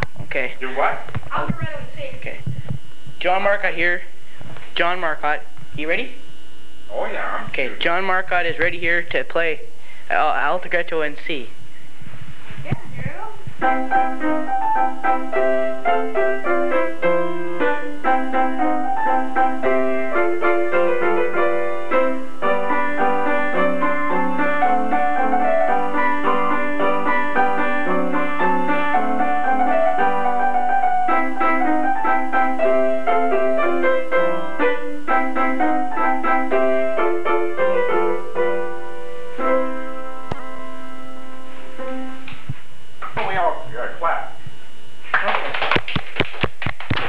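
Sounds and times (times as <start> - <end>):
voices: 6.9 - 9.5
upright piano playing: 13.6 - 42.3.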